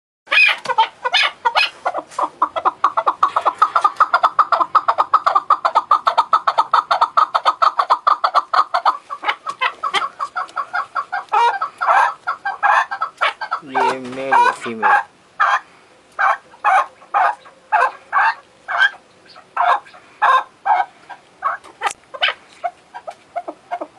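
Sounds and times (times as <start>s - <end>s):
partridge chuck calls: 0.3s - 23.9s.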